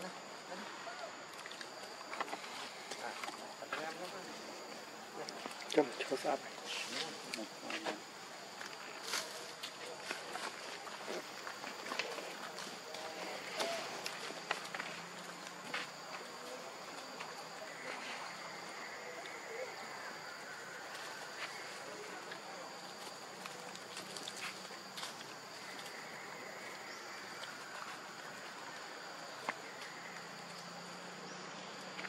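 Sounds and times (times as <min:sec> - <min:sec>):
insects droning: 0:00.0 - 0:32.0
steady background hiss: 0:00.0 - 0:32.0.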